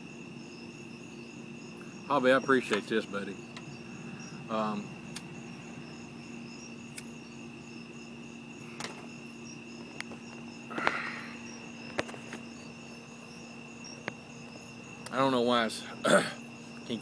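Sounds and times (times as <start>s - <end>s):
crickets chirping: 0.0s - 17.0s
pipe lighting hiss: 1.7s - 5.4s.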